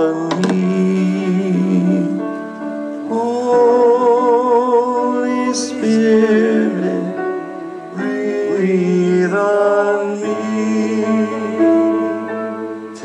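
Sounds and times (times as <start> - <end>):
instrumental accompaniment: 0.0 - 13.0
slow song with singer: 0.0 - 13.0.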